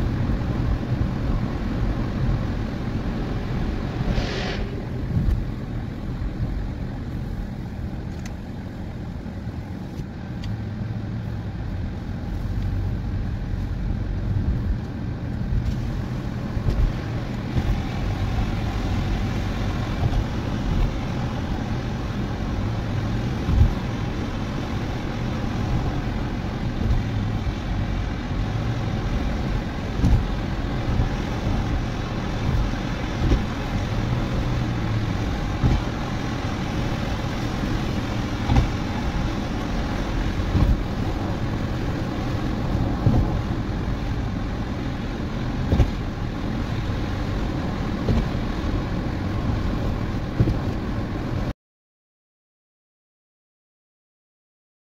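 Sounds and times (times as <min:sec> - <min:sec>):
car engine and tyre noise: 0:00.0 - 0:51.5
low hum: 0:03.6 - 0:06.8.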